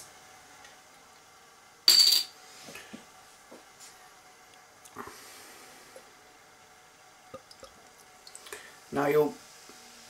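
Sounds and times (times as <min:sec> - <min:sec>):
metal bottle cap clinking on counter: 0:01.9 - 0:02.3.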